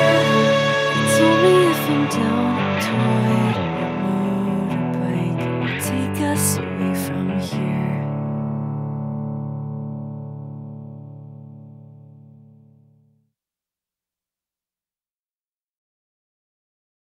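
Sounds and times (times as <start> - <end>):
rock band playing: 0.0 - 4.2
ringing guitar chord: 0.0 - 6.2.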